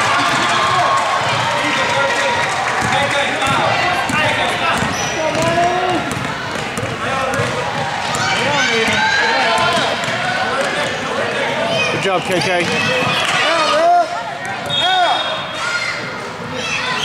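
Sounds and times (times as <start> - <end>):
voices of players and spectators: 0.0 - 17.0
basketball dribbled on hardwood floor: 2.8 - 9.0.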